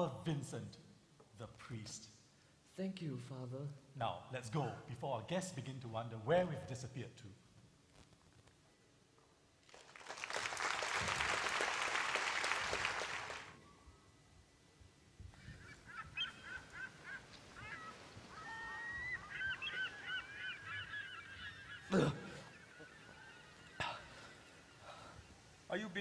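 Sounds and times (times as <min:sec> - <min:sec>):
audience applauding: 0:09.6 - 0:13.6
gulls crying: 0:15.3 - 0:26.0.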